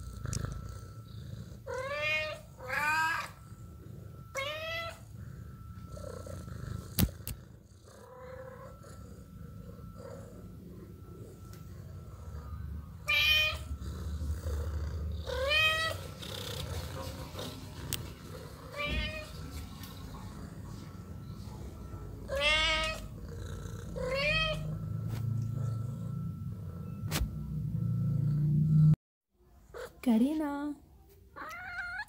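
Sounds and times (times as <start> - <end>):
cat meowing: 1.7 - 3.4, 18.6 - 19.4, 22.2 - 23.1, 24.0 - 24.7, 31.4 - 32.0.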